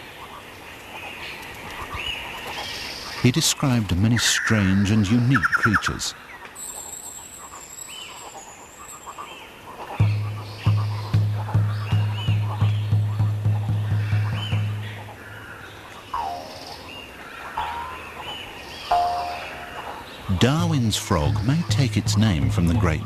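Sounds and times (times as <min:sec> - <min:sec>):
forest creatures chirping: 0:04.1 - 0:23.0
deep drum-like pulse: 0:10.0 - 0:15.2, 0:20.3 - 0:23.0.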